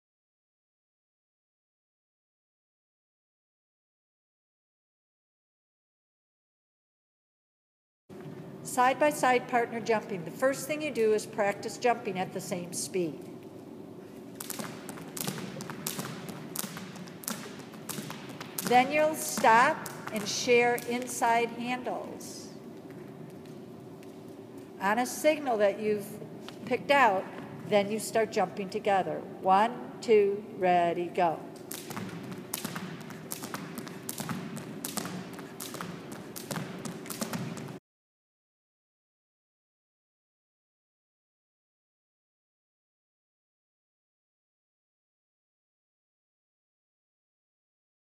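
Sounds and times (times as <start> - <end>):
sneakers landing: 14.4 - 20.7, 31.7 - 37.8
jump ropes slapping wooden floor: 14.4 - 21.4, 31.7 - 37.8.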